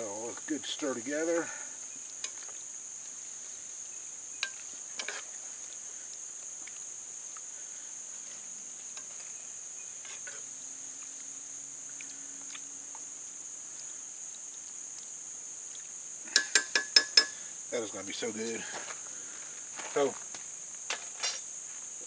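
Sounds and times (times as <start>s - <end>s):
insects buzzing: 0.0s - 22.0s.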